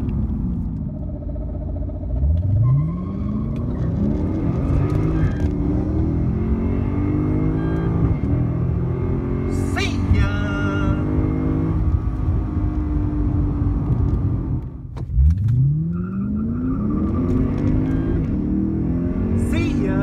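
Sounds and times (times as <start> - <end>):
car engine accelerating hard: 0.0 - 20.0.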